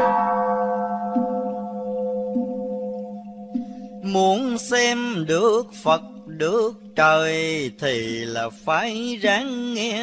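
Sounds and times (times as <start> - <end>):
bowl bell ringing: 0.0 - 4.9.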